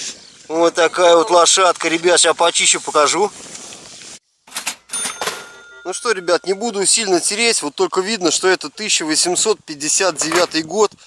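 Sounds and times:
cash register clicks: 4.5 - 6.6, 10.0 - 10.7
bright ringing bell: 4.5 - 7.0.

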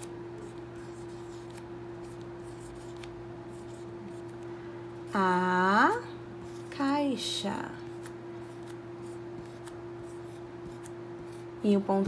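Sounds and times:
marker pen scratching on whiteboard: 0.0 - 4.2, 8.4 - 11.5
steady hum: 0.0 - 12.0.

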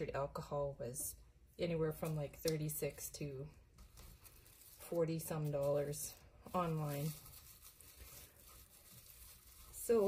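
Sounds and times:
plastic wrap crinkling: 3.8 - 10.0.

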